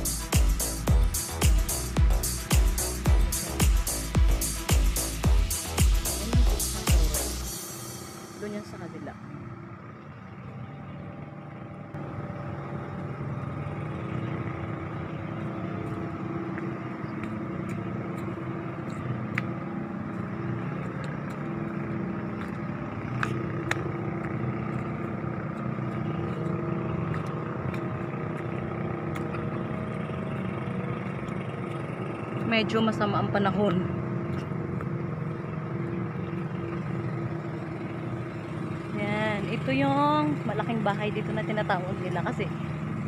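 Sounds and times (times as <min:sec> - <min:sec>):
steady engine-like hum: 0:00.0 - 0:43.0.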